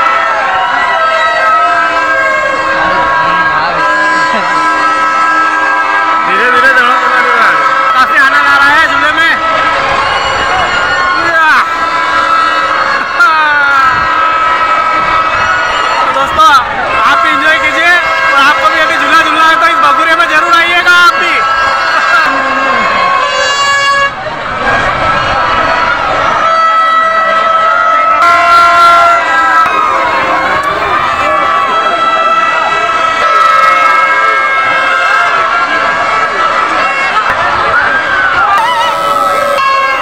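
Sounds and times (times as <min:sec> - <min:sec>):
crowd noise: 0:00.0 - 0:40.0
overlapping horn-like tones: 0:00.0 - 0:40.0.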